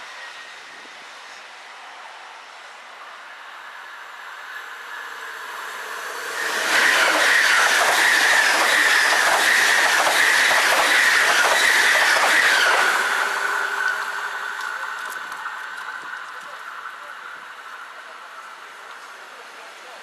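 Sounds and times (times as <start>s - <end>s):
high-speed train passing: 0.0s - 20.0s
steady high tone: 4.4s - 9.4s.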